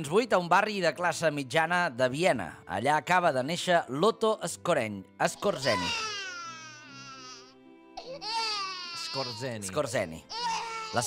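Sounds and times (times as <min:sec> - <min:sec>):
soft background music: 0:00.0 - 0:11.0
newborn baby crying: 0:05.3 - 0:11.0.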